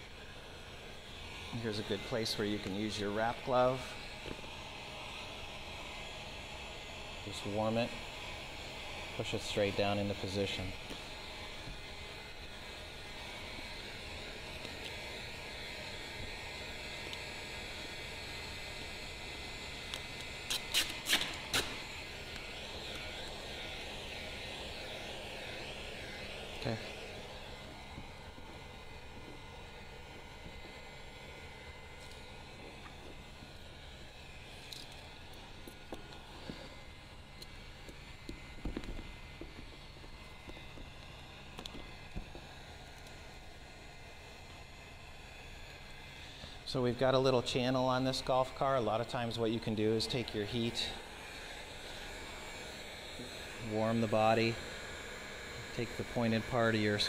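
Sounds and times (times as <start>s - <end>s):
heat gun blowing: 0.0s - 57.0s.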